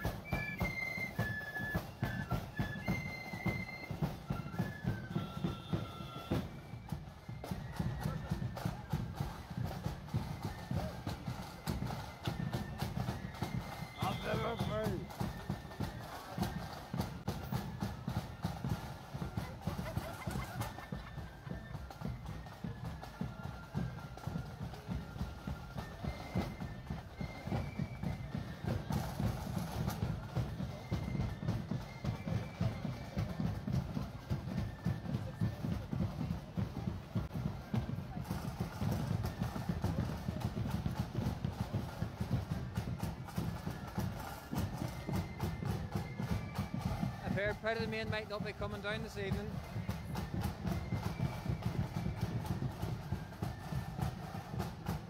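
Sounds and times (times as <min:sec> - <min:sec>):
marching band playing: 0:00.0 - 0:55.0.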